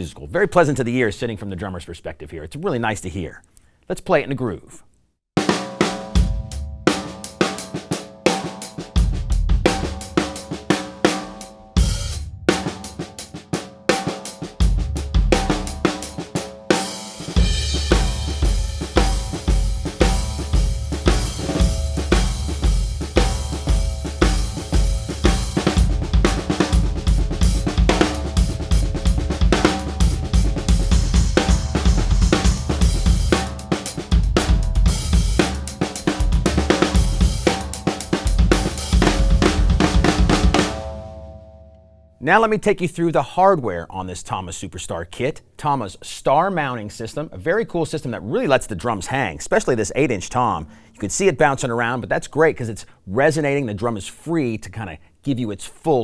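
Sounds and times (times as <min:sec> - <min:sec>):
drum kit playing a groove: 0:05.4 - 0:41.4.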